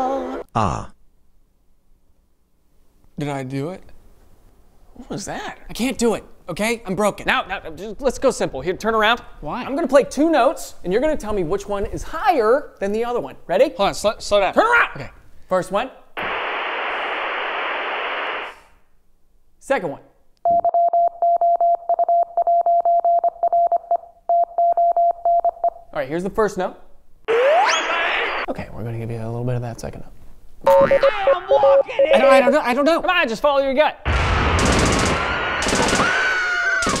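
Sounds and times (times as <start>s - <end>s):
radio static hiss: 16.2s - 18.8s.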